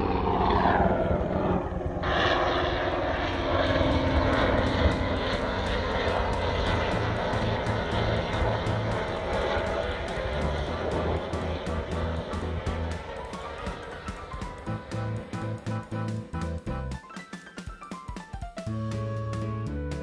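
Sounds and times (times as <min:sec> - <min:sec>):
helicopter rotor chopping: 0:00.0 - 0:20.0.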